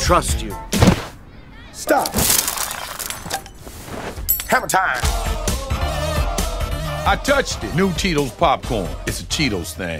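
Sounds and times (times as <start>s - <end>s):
dishes crashing and breaking: 2.0s - 3.6s.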